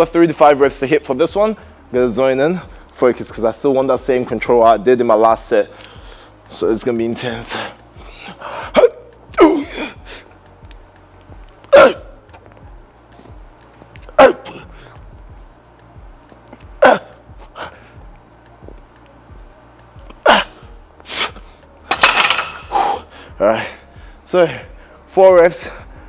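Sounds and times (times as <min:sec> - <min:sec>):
quiet background music: 0:00.0 - 0:26.0
man grunting and exhaling: 0:11.7 - 0:12.2, 0:16.8 - 0:17.8, 0:20.2 - 0:21.3.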